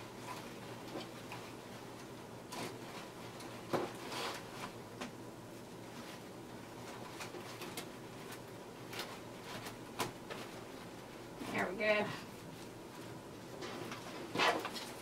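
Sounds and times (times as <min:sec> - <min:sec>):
rustling of wreath materials: 0:00.0 - 0:04.9, 0:05.6 - 0:15.0.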